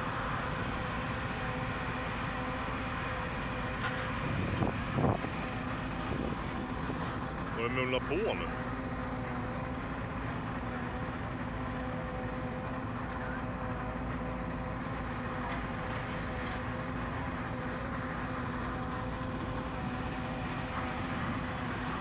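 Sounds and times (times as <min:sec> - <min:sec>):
car engine idling: 0:02.6 - 0:15.3.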